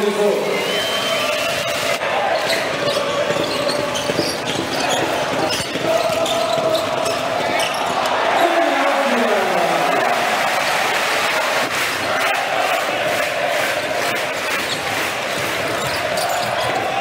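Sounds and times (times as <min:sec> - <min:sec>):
crowd din with voices: 0:00.0 - 0:17.0
sneakers squeaking: 0:02.2 - 0:08.5, 0:15.6 - 0:17.0
basketball dribbling on hardwood: 0:02.5 - 0:07.8.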